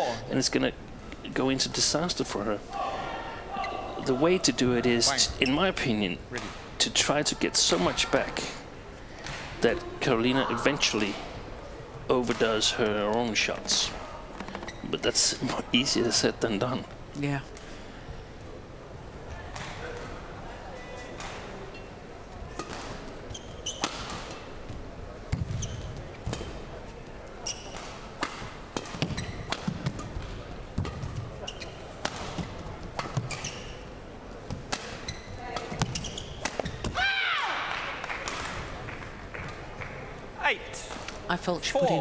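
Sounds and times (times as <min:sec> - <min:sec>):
crowd noise: 0:00.0 - 0:42.0
shoe squeaks: 0:05.3 - 0:05.7, 0:14.6 - 0:15.2, 0:23.3 - 0:24.1, 0:25.4 - 0:26.1, 0:27.4 - 0:27.9, 0:29.0 - 0:29.6, 0:31.4 - 0:32.0, 0:33.0 - 0:34.0, 0:34.9 - 0:36.9.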